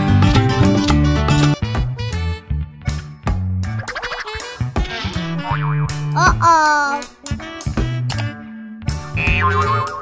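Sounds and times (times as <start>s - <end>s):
bouncy children's music: 0.0s - 10.0s.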